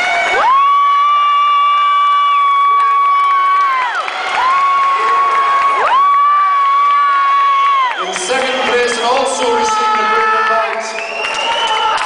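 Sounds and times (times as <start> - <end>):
audience cheering: 0.0 - 12.0.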